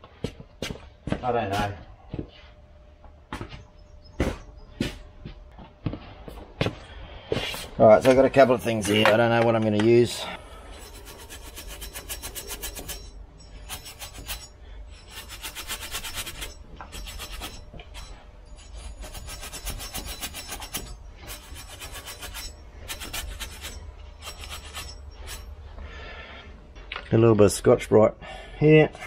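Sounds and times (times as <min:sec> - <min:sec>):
abrasive rasping on metal hub: 0:07.9 - 0:26.3.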